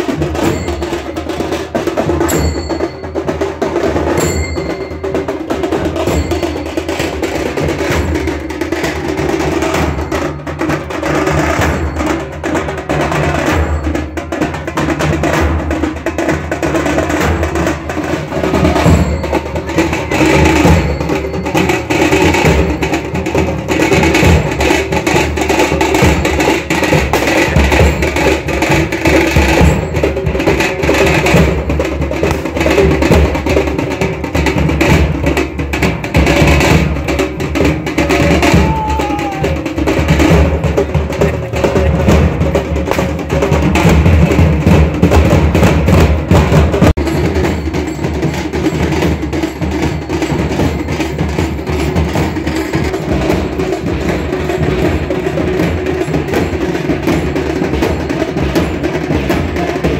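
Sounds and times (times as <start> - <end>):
loud percussion music: 0.0 - 59.9.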